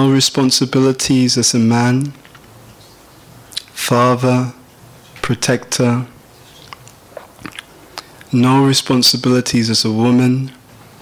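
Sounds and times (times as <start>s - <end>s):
mouth clicks and lip smacks: 2.1s - 2.6s, 3.5s - 3.8s, 6.5s - 8.3s.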